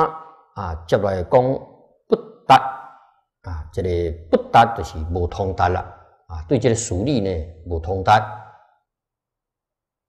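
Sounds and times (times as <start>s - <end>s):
man speaking: 0.0s - 1.7s, 3.4s - 8.5s.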